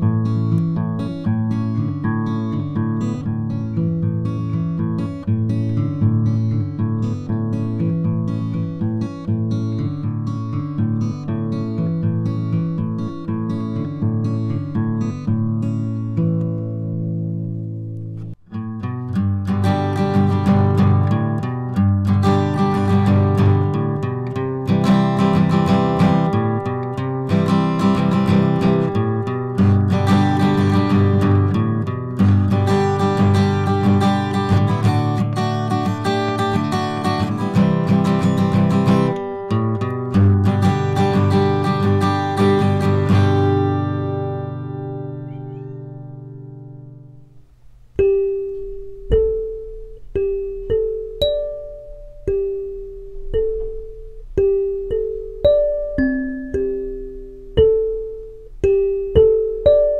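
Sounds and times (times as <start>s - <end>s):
acoustic guitar picked: 0.0s - 59.9s
kalimba notes plucked: 48.0s - 59.9s.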